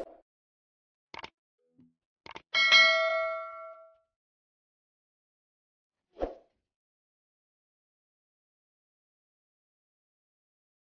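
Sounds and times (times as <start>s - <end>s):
bell-like ding: 2.6s - 4.1s.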